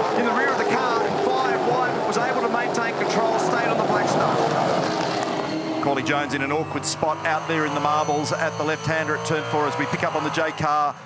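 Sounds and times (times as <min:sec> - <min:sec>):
race car engines passing: 0:00.0 - 0:11.0.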